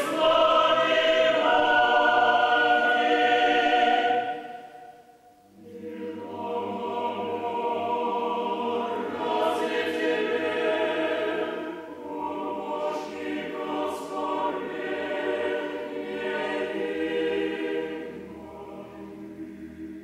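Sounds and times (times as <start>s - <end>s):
choir singing chant: 0.0s - 20.0s.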